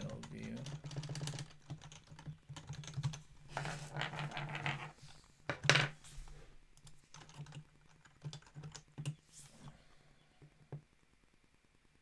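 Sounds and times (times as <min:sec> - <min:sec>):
typing on computer keyboard: 0:00.0 - 0:03.2, 0:06.8 - 0:09.2.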